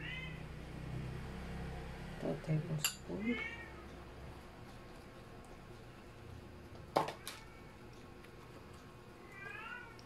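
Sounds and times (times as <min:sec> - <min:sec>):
cat meowing: 0:00.0 - 0:00.5, 0:03.2 - 0:03.9, 0:09.2 - 0:10.0
spoon clinking against glass bowl: 0:02.8 - 0:03.1.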